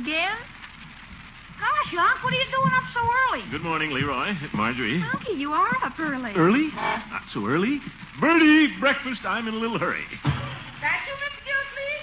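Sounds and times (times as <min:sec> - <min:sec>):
radio recording hiss: 0:00.0 - 0:12.0
person speaking: 0:01.6 - 0:11.2.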